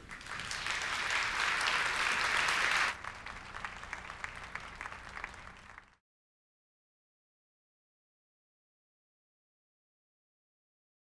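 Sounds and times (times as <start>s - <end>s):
audience applause: 0.0s - 6.0s.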